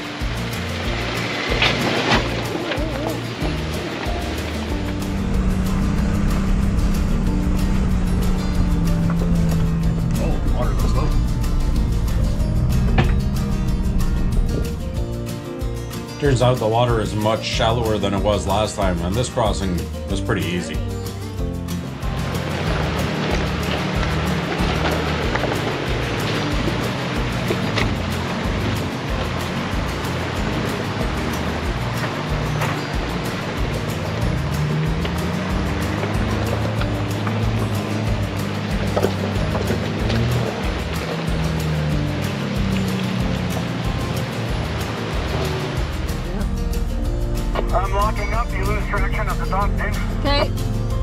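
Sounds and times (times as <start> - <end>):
background music with steady beat: 0.0 - 51.0
off-road vehicle engine: 0.0 - 51.0
rushing river water: 0.0 - 51.0.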